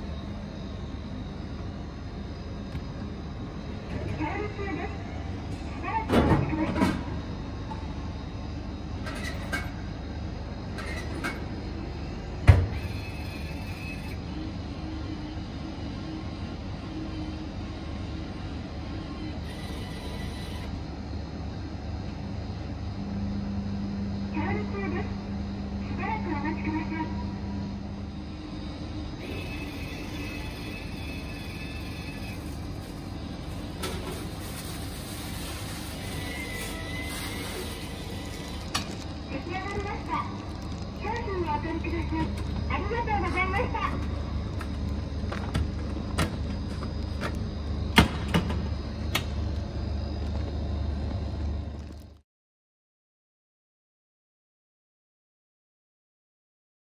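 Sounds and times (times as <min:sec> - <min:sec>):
vending machine humming: 0:00.0 - 0:52.2.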